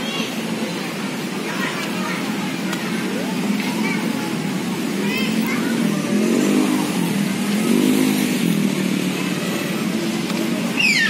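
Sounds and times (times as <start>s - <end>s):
motorcycle engine revving: 3.0s - 11.0s.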